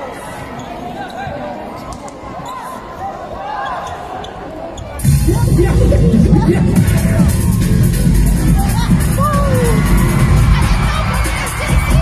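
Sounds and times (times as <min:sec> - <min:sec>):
murmur of crowd voices: 0:00.0 - 0:12.0.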